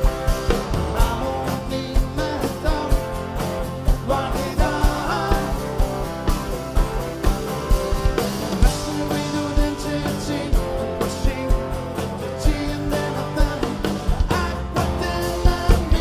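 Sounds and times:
drum kit beat: 0.0s - 16.0s
strummed acoustic guitars: 0.0s - 16.0s
man singing: 0.6s - 6.1s, 8.6s - 16.0s.

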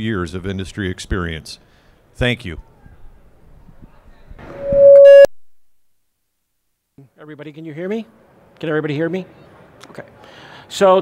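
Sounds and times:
microphone feedback tone: 4.4s - 5.4s.

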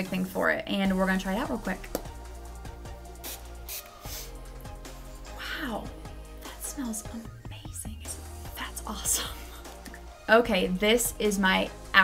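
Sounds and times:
background music: 0.0s - 12.0s
spray bottle spritzes: 3.2s - 4.4s.

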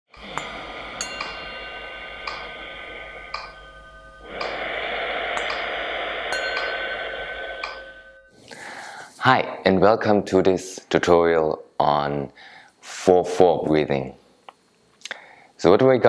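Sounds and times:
ringing chime notes: 0.2s - 8.4s
soft steady wash of sound: 0.2s - 9.4s.

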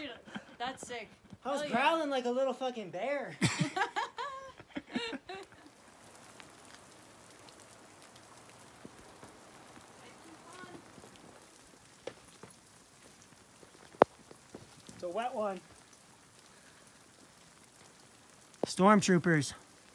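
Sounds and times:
light rain pattering: 0.0s - 19.9s
man laughing and talking: 3.3s - 5.7s.

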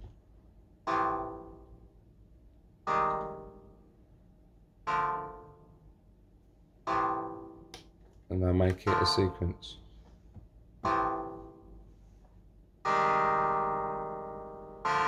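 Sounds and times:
synthesizer plucked chords: 0.8s - 1.9s, 2.8s - 3.8s, 6.9s - 7.9s, 8.6s - 9.8s, 10.8s - 11.8s, 12.8s - 15.0s.

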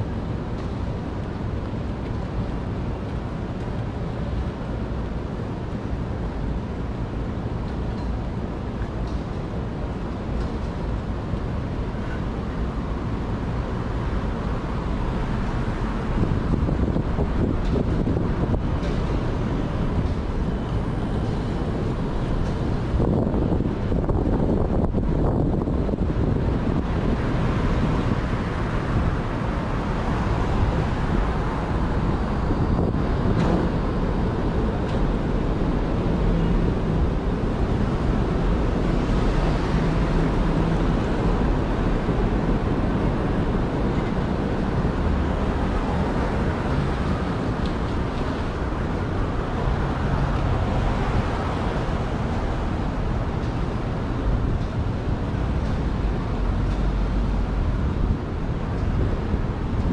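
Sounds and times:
traffic rumble: 0.0s - 59.9s
wind buffeting microphone: 0.0s - 59.9s.

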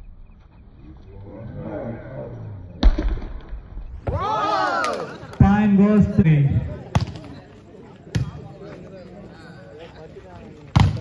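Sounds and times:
faint crowd chatter: 4.0s - 11.0s.

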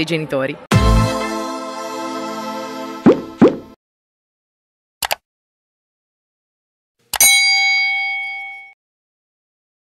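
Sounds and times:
bright bell ding: 7.2s - 8.8s.

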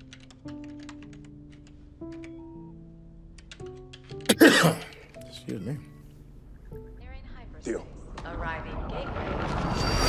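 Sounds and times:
computer keyboard typing: 0.0s - 2.5s, 3.4s - 4.4s
soft background music: 0.0s - 9.0s.

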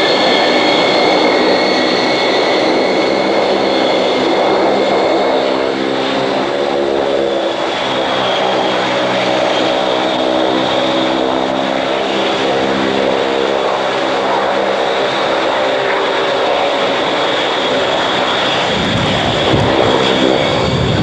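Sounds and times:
turboprop engines droning: 0.0s - 21.0s.

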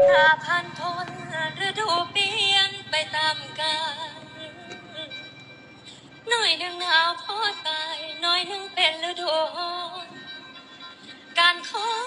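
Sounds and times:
woman singing a long wavering note: 0.0s - 5.1s.

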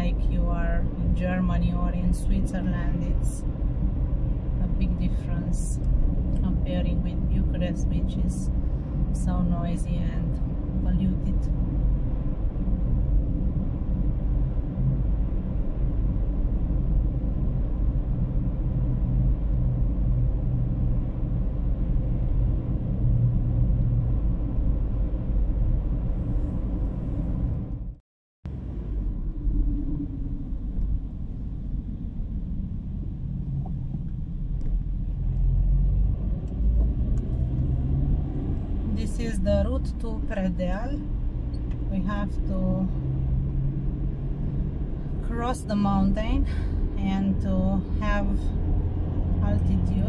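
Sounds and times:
car engine and tyre rumble: 0.0s - 50.0s.

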